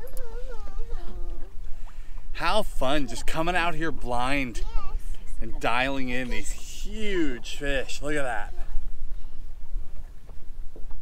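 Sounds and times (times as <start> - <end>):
steady low rumble: 5.0 - 11.0.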